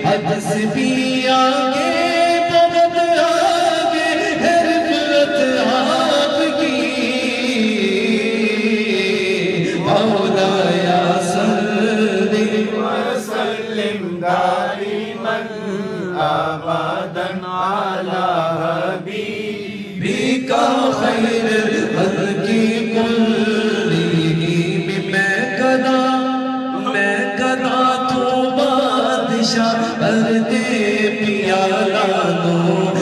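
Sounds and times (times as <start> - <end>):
man singing into a microphone: 0.0 - 33.0.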